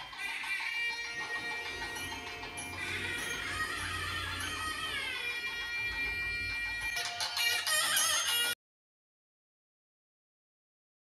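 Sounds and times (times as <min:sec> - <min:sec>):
reed pipe music: 0:00.0 - 0:08.6.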